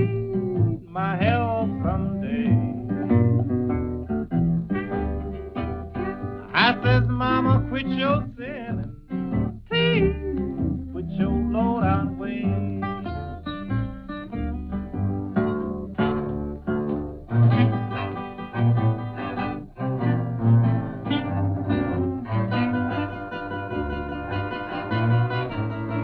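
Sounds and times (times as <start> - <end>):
instrumental blues music: 0.0 - 26.0.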